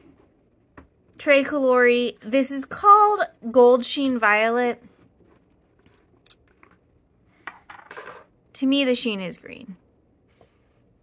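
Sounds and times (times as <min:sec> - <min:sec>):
cap scraping clatter on desk: 0:07.4 - 0:08.3.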